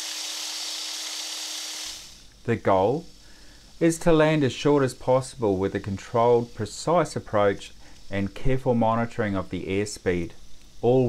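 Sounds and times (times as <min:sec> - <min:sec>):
faint constant hum: 0:01.9 - 0:11.0.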